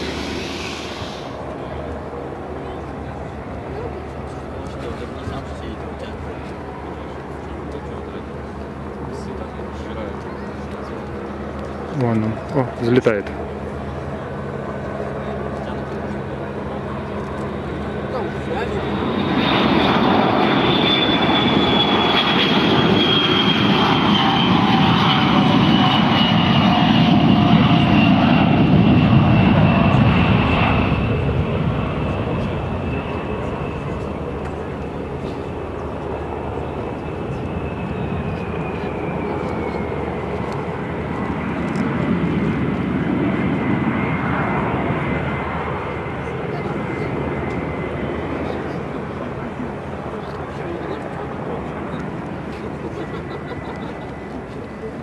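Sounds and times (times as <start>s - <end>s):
jet engines at take-off power: 0.0s - 55.0s.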